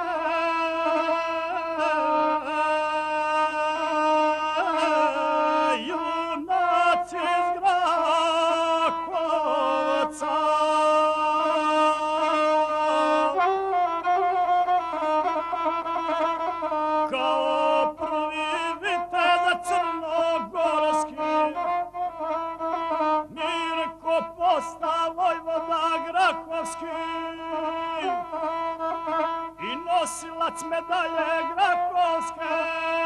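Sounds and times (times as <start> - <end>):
man chanting epic singing: 0.0 - 13.4, 17.0 - 21.9, 23.2 - 28.9, 29.5 - 33.0
bowed single-string fiddle: 0.0 - 33.0.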